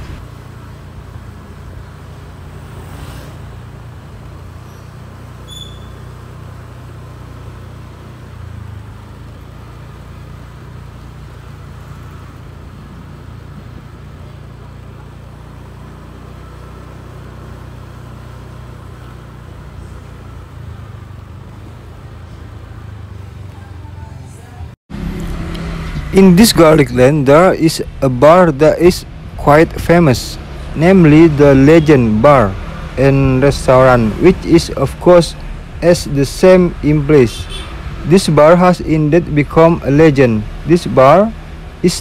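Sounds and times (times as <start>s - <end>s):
motorbike engine hum: 0.0s - 42.0s.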